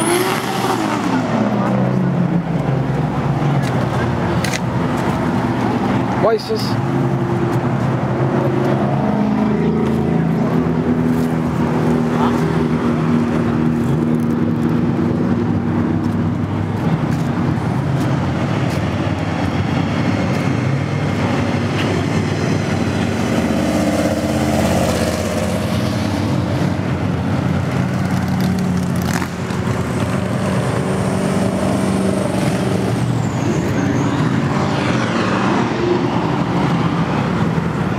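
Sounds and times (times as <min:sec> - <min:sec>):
car engines running: 0:00.0 - 0:37.9
cars driving past: 0:00.0 - 0:37.9
people's voices: 0:00.6 - 0:06.8, 0:07.8 - 0:14.3.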